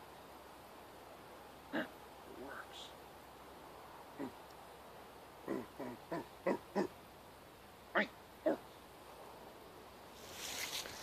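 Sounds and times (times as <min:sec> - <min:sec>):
soft rustling hiss: 0:00.0 - 0:11.0
man making animal-like sounds: 0:01.7 - 0:02.9, 0:04.1 - 0:04.4, 0:05.4 - 0:07.0, 0:07.9 - 0:08.7.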